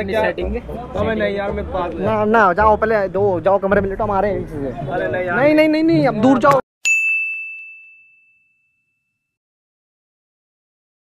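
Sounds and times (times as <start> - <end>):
bell ding: 6.8 - 9.4.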